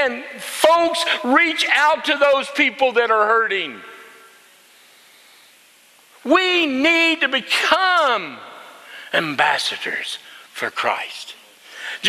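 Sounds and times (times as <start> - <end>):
man's voice: 0.0 - 4.1, 6.2 - 12.0
room tone hiss: 0.0 - 12.0.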